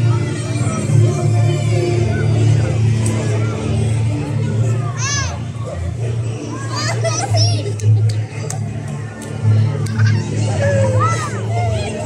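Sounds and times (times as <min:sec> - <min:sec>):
children calling and squealing: 0:00.0 - 0:08.5, 0:09.8 - 0:12.0
crowd chatter: 0:00.0 - 0:12.0.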